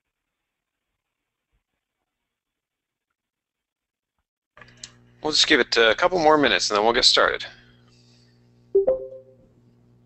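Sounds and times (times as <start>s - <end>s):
faint electrical hum: 4.6s - 10.0s
two-note chime: 8.8s - 9.4s.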